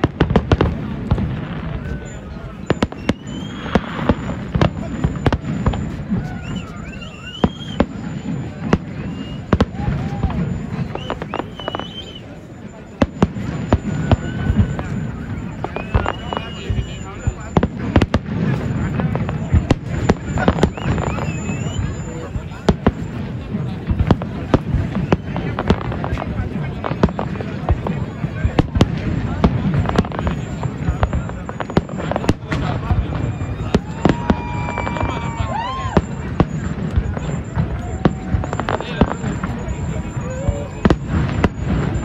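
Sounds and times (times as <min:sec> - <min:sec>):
firework shells bursting: 0:00.0 - 0:42.0
low rumble of fireworks display: 0:00.0 - 0:42.0
long whistling tone: 0:01.7 - 0:17.9, 0:18.5 - 0:26.2, 0:29.2 - 0:42.0.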